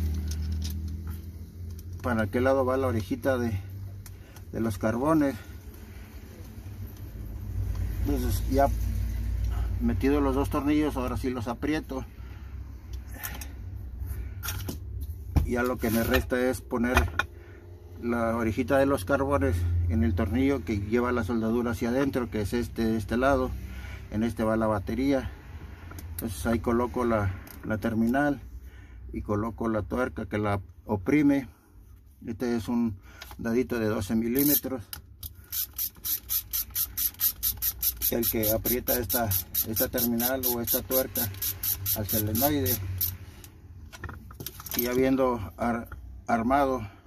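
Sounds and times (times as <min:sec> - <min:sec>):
ratchet clicking: 0:34.4 - 0:43.2.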